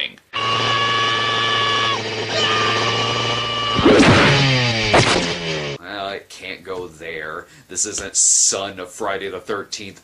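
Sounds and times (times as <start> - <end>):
loud noisy burst: 0.4 - 5.8
off-road vehicle engine running: 0.4 - 5.8.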